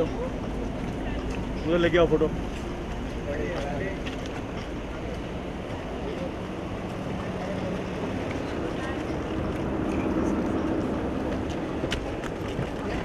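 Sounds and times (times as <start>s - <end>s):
cars idling: 0.0s - 13.0s
indistinct crowd voices: 0.0s - 13.0s.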